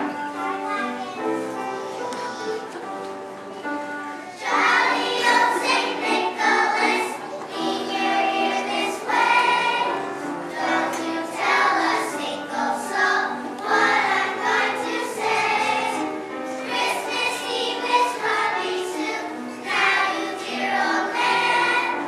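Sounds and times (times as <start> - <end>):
children's choir singing: 0.0 - 22.0.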